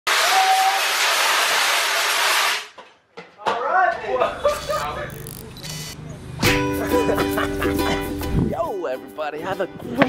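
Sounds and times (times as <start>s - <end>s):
fire extinguisher hissing: 0.1s - 2.7s.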